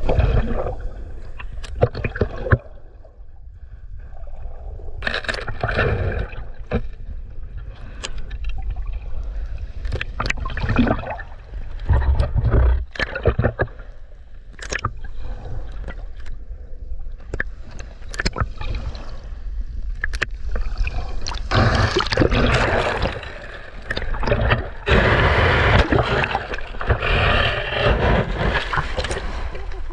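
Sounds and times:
sea water sloshing and gurgling: 0.0 - 29.9
small waves washing over: 8.1 - 29.9.

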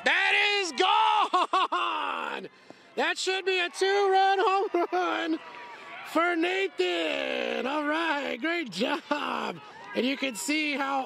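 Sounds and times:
person yelling and whooping: 0.0 - 2.5.

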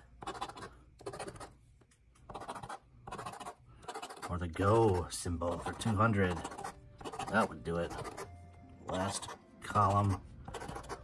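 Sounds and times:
coin scratching lottery ticket: 0.2 - 1.5, 2.3 - 8.3, 8.9 - 11.0.

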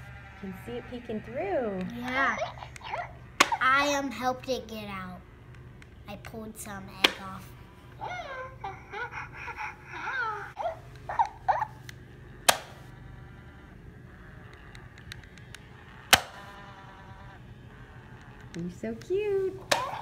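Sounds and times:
electronic toy chirps and giggles: 2.0 - 3.2.

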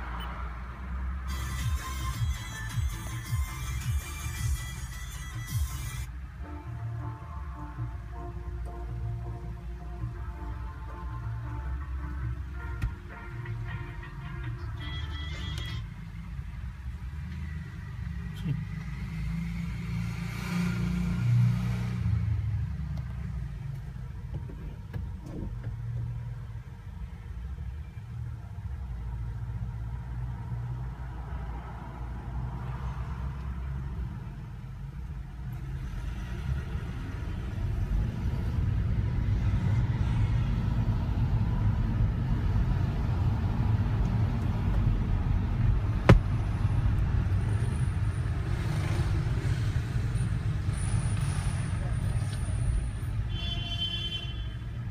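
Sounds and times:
road noise inside car: 0.0 - 54.9
car engine rumble: 22.2 - 32.6, 40.6 - 53.2.

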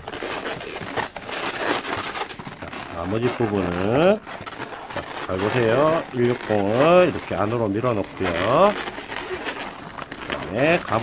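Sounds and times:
balloons rubbing rustle: 0.0 - 11.0.

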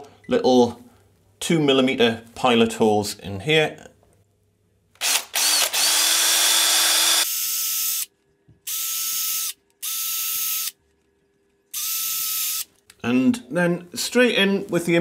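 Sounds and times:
cordless drill boring into wood: 5.0 - 8.1, 8.7 - 10.7, 11.7 - 12.7.

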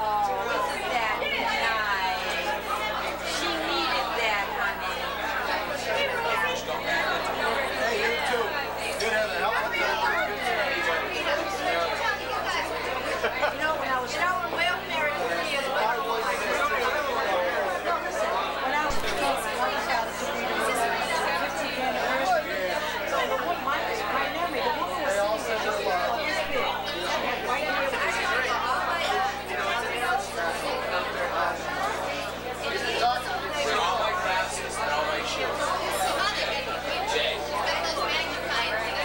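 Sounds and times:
babble of party chatter: 0.0 - 39.0.

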